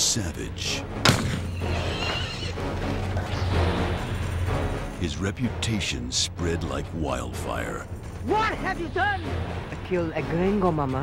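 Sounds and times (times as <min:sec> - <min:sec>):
horse whinnying: 0:01.2 - 0:03.8.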